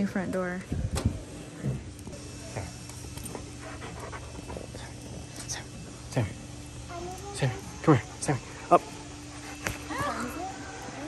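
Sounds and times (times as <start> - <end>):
dog panting: 2.5 - 10.2.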